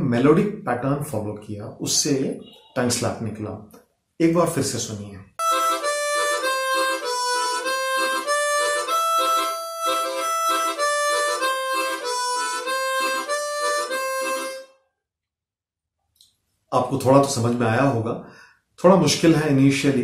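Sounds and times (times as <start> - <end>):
tongue slapping harmonica: 5.4 - 14.8
chromatic harmonica melody: 5.4 - 14.9.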